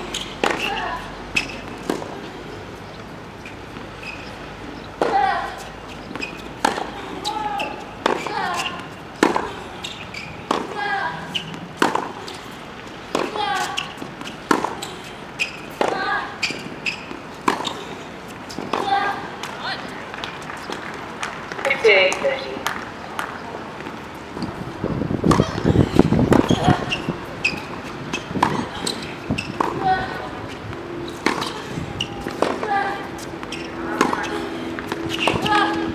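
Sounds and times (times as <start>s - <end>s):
racquets striking tennis ball: 0.0s - 24.6s, 25.2s - 35.9s.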